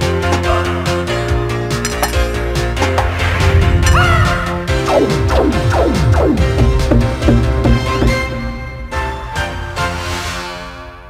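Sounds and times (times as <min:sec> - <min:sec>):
upbeat tv theme music: 0:00.0 - 0:11.0.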